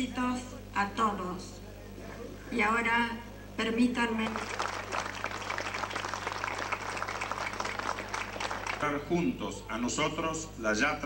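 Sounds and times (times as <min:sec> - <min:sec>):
audience applauding: 0:04.2 - 0:09.0.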